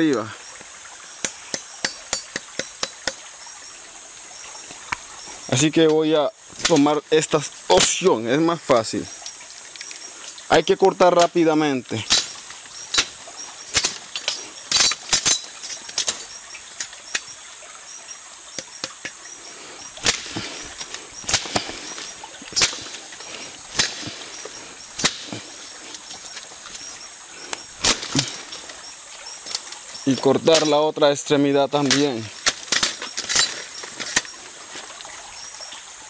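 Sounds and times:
blade chopping vine: 1.2 - 3.2, 20.0 - 26.0, 27.8 - 28.6.

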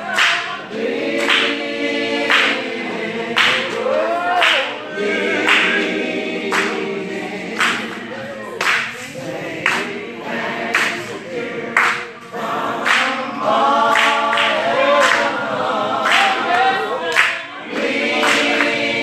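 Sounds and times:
congregation singing: 0.0 - 19.0
hand claps: 0.1 - 2.8, 3.4 - 4.8, 5.4 - 6.9, 7.5 - 10.0, 10.7 - 12.2, 12.8 - 13.2, 13.8 - 15.4, 16.0 - 19.0.

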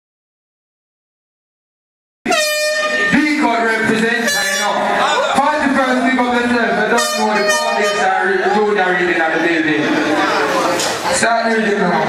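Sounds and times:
air horn effect: 2.3 - 3.4, 4.2 - 5.0, 6.8 - 8.4.

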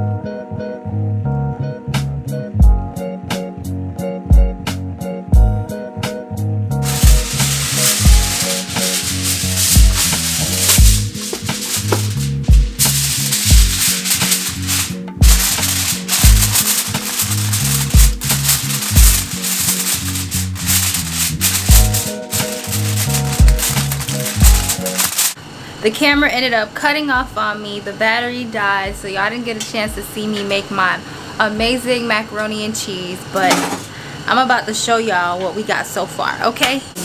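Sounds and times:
background music with bass beat: 1.3 - 25.1
aluminium foil crinkling: 6.8 - 25.4.

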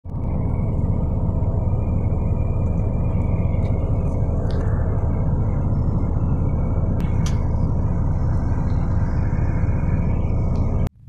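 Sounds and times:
vehicle cabin rumble on dirt road: 0.0 - 11.0.

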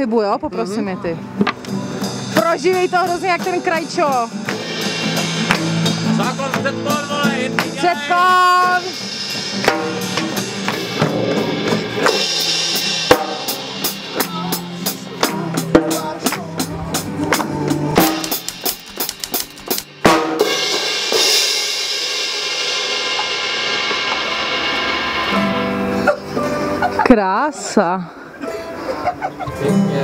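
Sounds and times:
cymbals crashing: 1.8 - 27.2
snare and tom strikes: 4.4 - 6.9, 9.1 - 14.6, 17.3 - 21.4.

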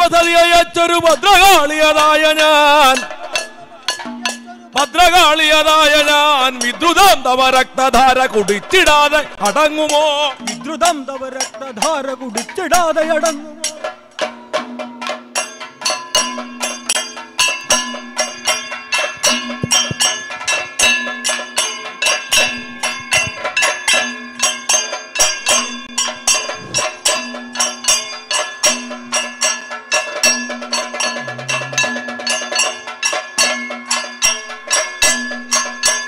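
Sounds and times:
cymbals ringing: 0.0 - 36.0
drums beating fast rhythm: 0.0 - 36.0
gong: 14.3 - 36.0.

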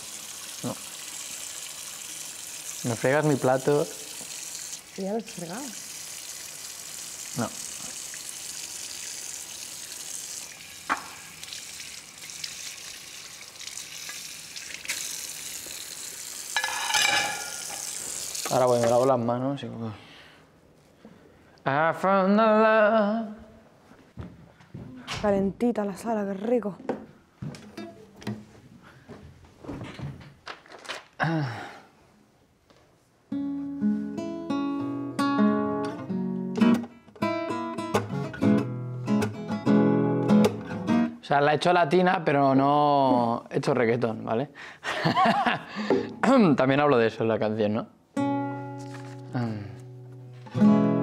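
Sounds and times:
tap water running into sink: 0.0 - 19.1
crockery clinking: 16.6 - 18.0.

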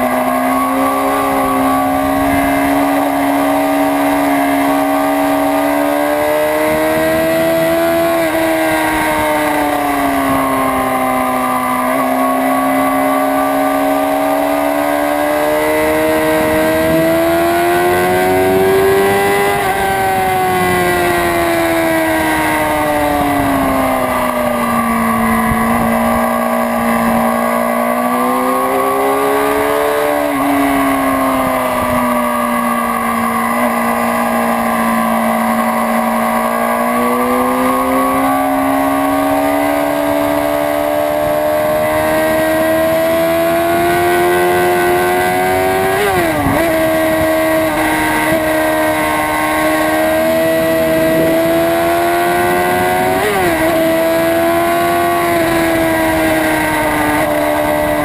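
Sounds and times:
motorcycle engine at speed: 0.0 - 58.0
wind rush: 0.8 - 3.4, 17.8 - 38.3.

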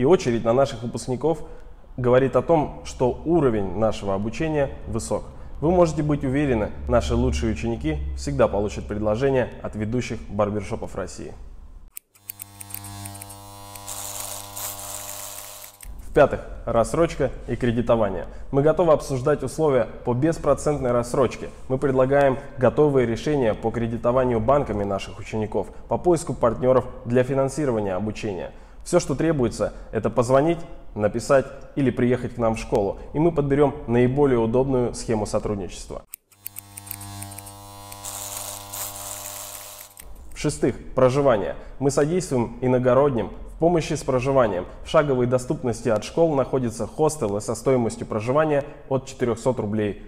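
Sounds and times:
electric hair clipper buzzing: 11.9 - 15.9, 36.2 - 40.3.

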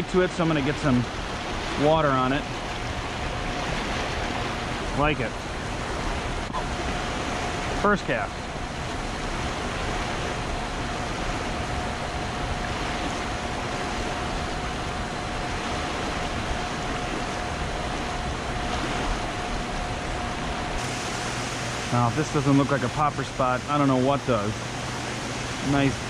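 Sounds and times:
river water rushing: 0.0 - 26.0
thin steady tone: 0.0 - 26.0.

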